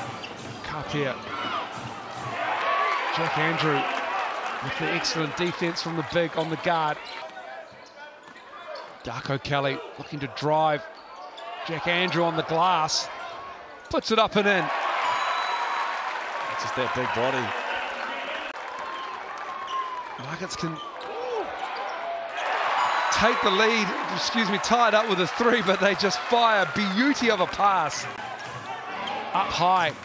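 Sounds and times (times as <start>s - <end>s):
crowd noise: 0.0s - 30.0s.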